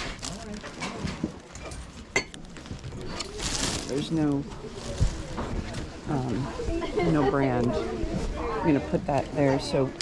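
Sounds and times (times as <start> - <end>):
plastic bags crinkling: 0.0 - 8.3
background chatter of voices: 0.0 - 10.0.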